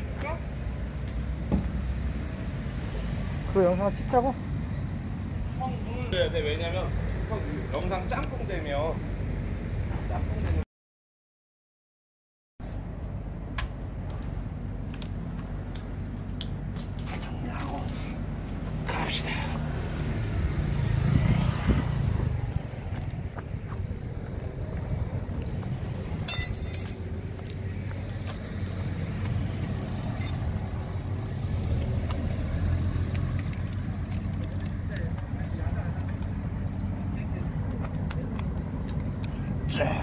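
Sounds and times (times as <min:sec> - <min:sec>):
vehicle engine rumbling: 0:00.0 - 0:10.6, 0:12.6 - 0:40.0.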